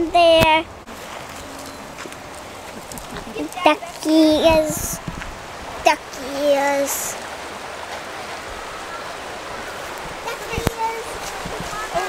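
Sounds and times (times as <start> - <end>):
stream rushing over rocks: 0.0 - 12.0.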